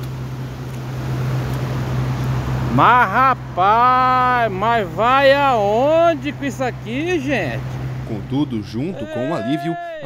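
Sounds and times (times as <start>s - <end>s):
constant low hum: 0.0s - 9.2s.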